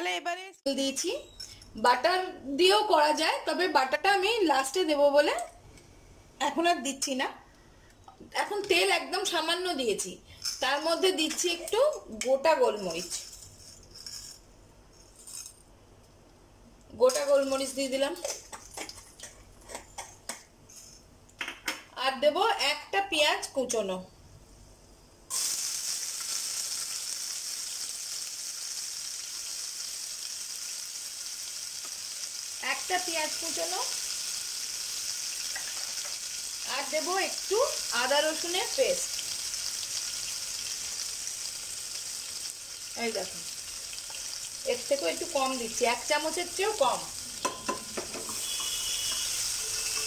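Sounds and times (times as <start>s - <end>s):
onions sizzling in hot oil: 25.3s - 50.0s
spoon stirring in pot: 47.4s - 50.0s.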